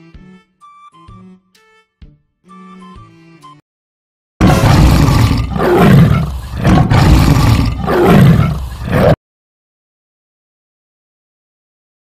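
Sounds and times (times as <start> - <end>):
animal roar sound effect: 4.4 - 9.2.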